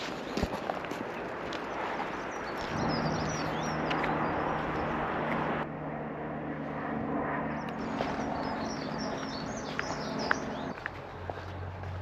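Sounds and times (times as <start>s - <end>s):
small birds chirping: 0.0s - 5.6s, 7.3s - 12.0s
steady low hum: 1.0s - 12.0s.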